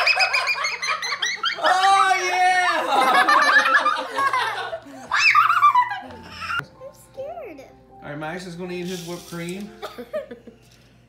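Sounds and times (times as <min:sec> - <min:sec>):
child shrieking laughter: 0:00.0 - 0:02.9, 0:05.1 - 0:06.6.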